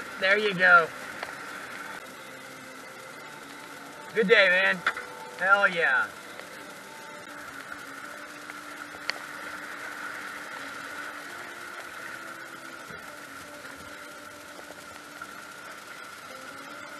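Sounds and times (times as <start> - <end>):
whitewater rushing: 0.0 - 16.9.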